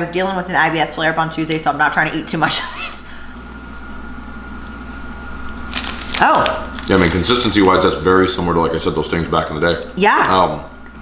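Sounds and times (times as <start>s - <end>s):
low room hum: 0.0s - 11.0s
plastic wrapper crinkling: 5.7s - 7.7s.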